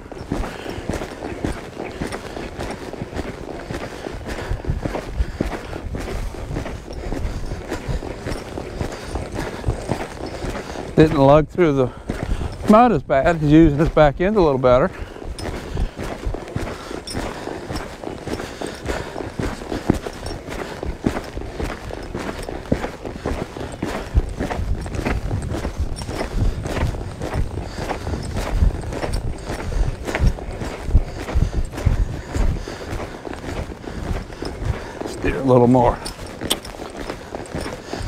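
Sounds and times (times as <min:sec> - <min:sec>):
horse hoofbeats on dirt: 0:00.0 - 0:38.0.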